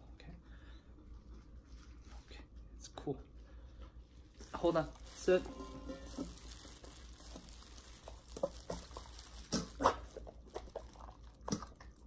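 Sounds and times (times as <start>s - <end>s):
dog eating wet mouth smacks: 8.4s - 12.0s.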